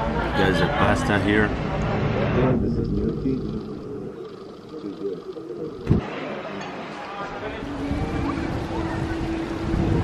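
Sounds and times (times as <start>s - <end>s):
muffled voices: 0.0s - 10.0s.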